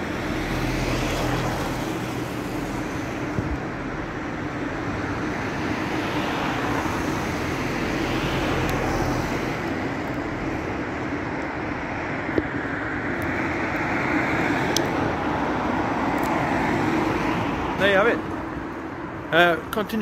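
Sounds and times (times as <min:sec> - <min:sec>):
road traffic: 0:00.0 - 0:20.0.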